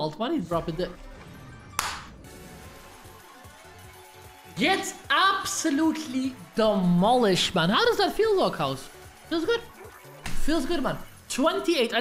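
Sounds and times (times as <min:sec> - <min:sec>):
quiet game music: 0:00.0 - 0:12.0.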